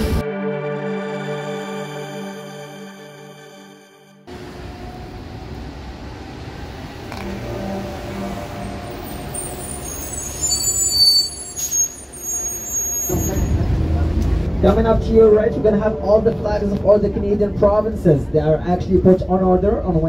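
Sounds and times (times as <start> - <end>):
city street traffic: 4.3 - 20.0
large vehicle engine rumbling: 4.3 - 20.0
high-pitched brake squeals: 8.1 - 13.7.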